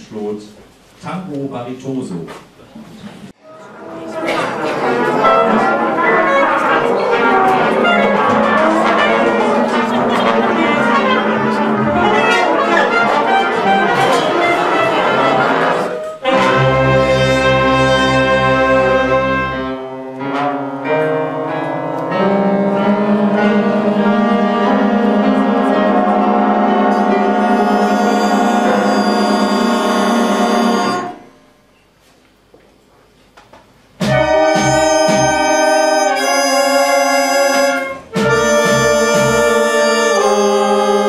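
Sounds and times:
jazz big band playing: 3.5 - 31.6, 34.0 - 41.0
deep bass note: 21.4 - 31.4.

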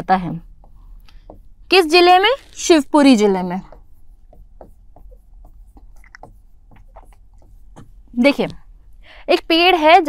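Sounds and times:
marker pen scratching on board: 0.4 - 8.6.

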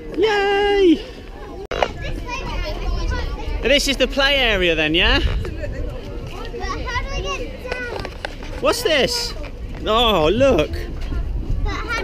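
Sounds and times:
children chattering and calling: 0.0 - 12.0.

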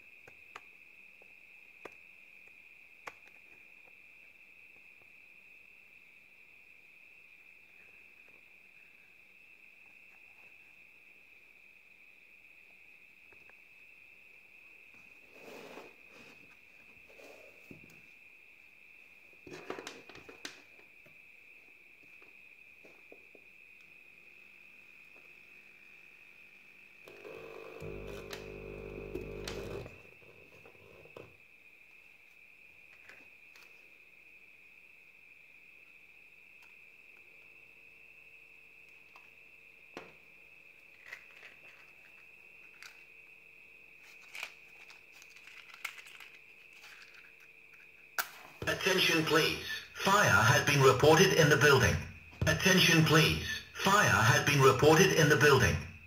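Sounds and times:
faint high-pitched whine: 0.0 - 56.0.

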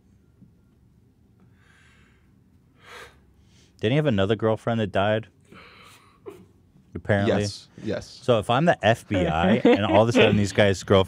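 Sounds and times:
man breathing softly: 1.4 - 3.8
sharp gasp: 1.6 - 3.7.

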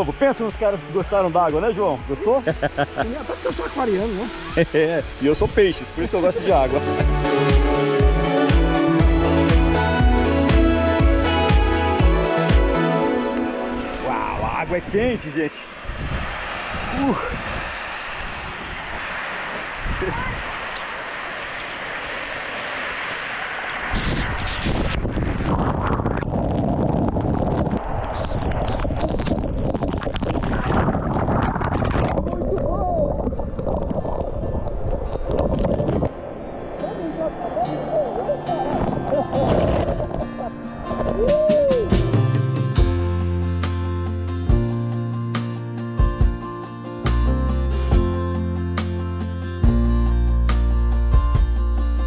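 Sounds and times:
water spray showering down: 0.1 - 7.6, 16.0 - 25.0
guitar music: 2.5 - 14.1, 34.2 - 52.0.

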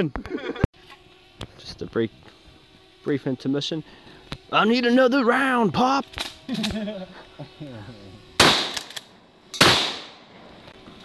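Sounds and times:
shotgun blast with echo: 8.4 - 8.8, 9.6 - 10.2.

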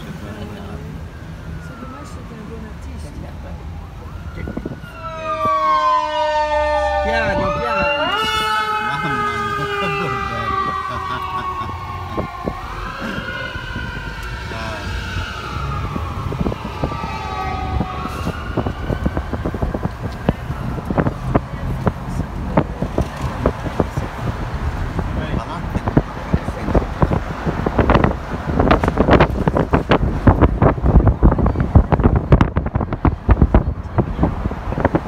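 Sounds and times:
emergency vehicle sirens wailing: 0.0 - 35.0
street traffic rumble: 0.0 - 35.0.

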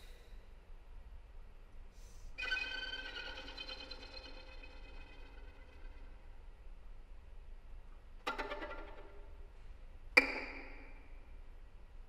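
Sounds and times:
bowed violin note: 2.4 - 6.3.

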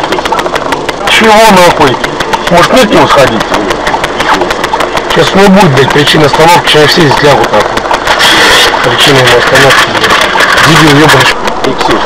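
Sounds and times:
car engine idling: 0.0 - 12.0
men talking: 0.0 - 12.0.

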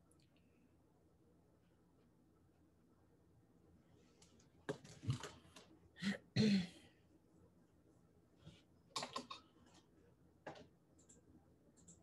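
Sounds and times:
woman clearing her throat: 6.0 - 6.8.

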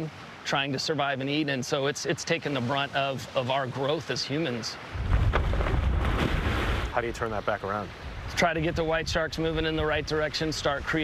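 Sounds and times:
water splashing beside boat: 2.5 - 7.2
wind rumble on microphone: 4.9 - 7.4, 8.0 - 11.0.

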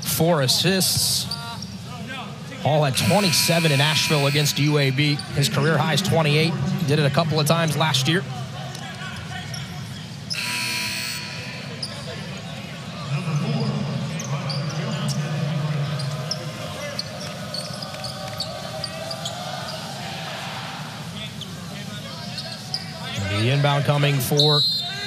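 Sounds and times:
crowd voices: 0.0 - 25.0.

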